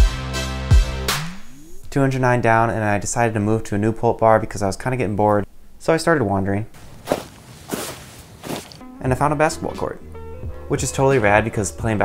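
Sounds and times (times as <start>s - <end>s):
footsteps walking outdoors: 6.8s - 8.9s.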